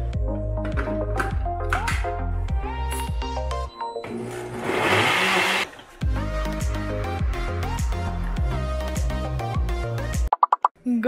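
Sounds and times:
blender motor running: 4.2 - 5.7.

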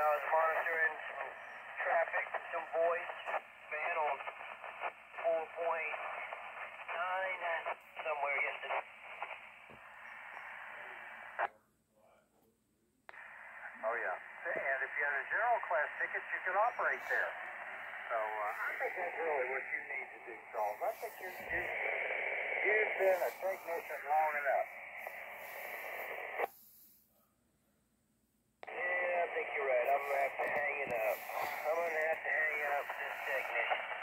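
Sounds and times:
radio static hiss: 0.0 - 11.5, 13.1 - 27.0, 28.6 - 34.0
speech over radio: 0.0 - 12.2, 13.1 - 26.5, 28.6 - 34.0
radio squelch click: 0.1 - 11.5, 13.1 - 26.5, 28.6 - 34.0.

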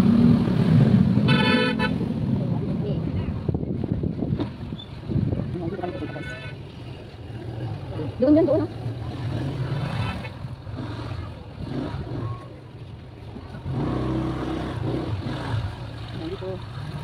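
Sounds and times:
vehicle engine humming: 0.0 - 17.0.

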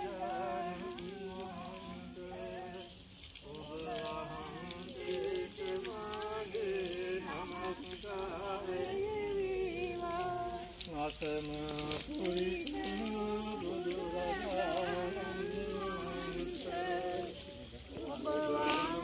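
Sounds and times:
group chanting: 0.0 - 2.9, 3.5 - 10.7, 12.1 - 19.0
steady hiss: 0.0 - 19.0.

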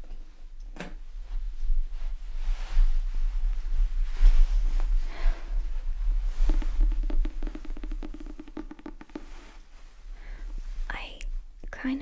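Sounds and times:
fingers tapping on book cover: 6.5 - 9.5.

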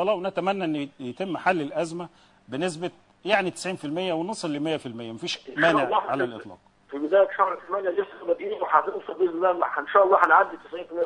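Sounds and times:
man talking over telephone: 3.8 - 11.0.

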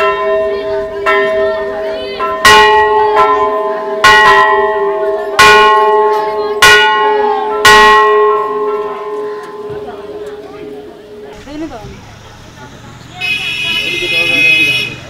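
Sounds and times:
temple bells ringing: 0.0 - 11.7.

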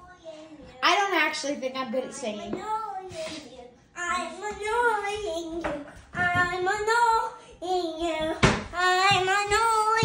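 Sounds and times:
child singing wordless tune: 2.4 - 10.0.

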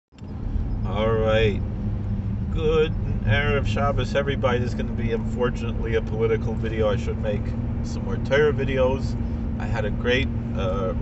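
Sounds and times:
car cabin hum and rumble: 0.1 - 11.0
man speaking: 0.9 - 1.6, 2.5 - 11.0.

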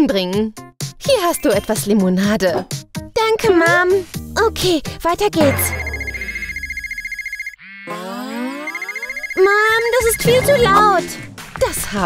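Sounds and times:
smartphone ringing: 5.5 - 10.2.

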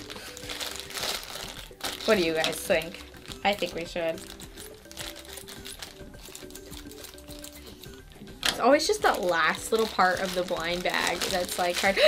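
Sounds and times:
foil bag crinkling: 0.0 - 7.8, 9.0 - 12.0.

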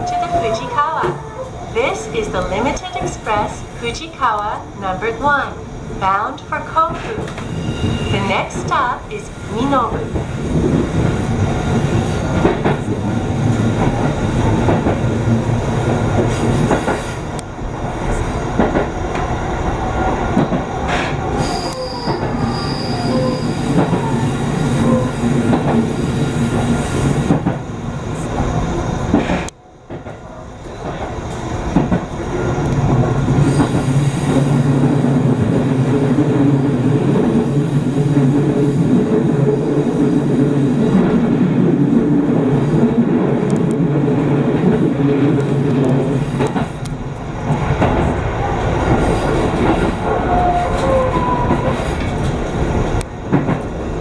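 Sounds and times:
train wheels rumbling on track: 0.0 - 54.0.

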